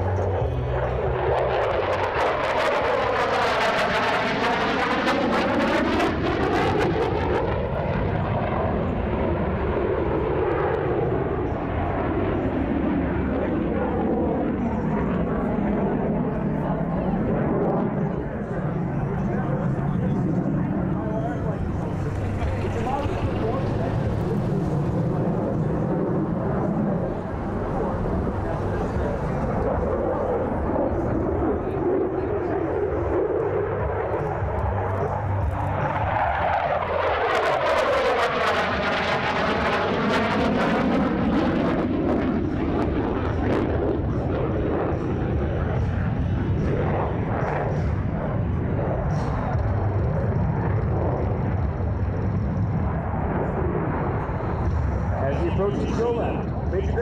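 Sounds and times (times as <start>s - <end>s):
fighter jet passing overhead: 0.0s - 57.0s.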